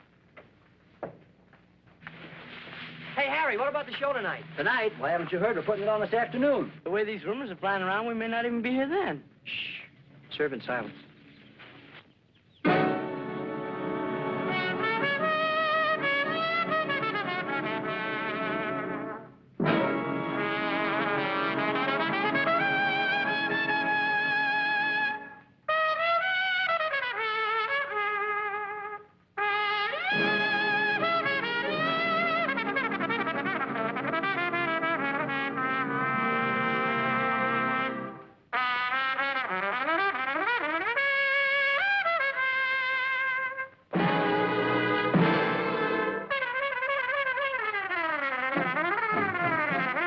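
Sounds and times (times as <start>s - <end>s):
big band swing music: 12.7s - 25.3s, 29.4s - 50.0s
solo trumpet: 12.7s - 50.0s.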